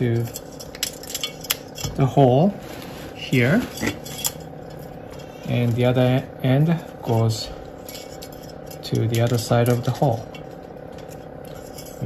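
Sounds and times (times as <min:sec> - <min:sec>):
steady low hum: 0:00.0 - 0:12.0
wire clinking and scraping: 0:00.0 - 0:12.0.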